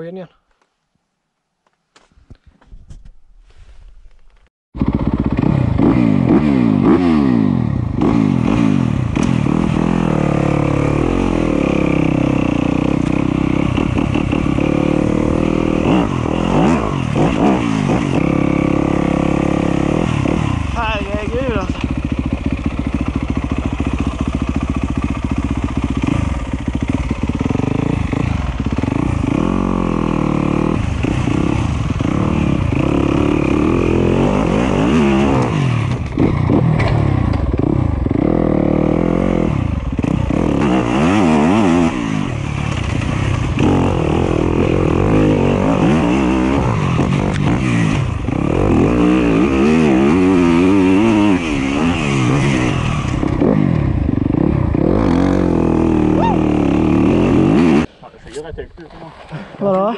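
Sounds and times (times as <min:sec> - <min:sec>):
dirt bike engine revving: 0:04.8 - 0:58.0.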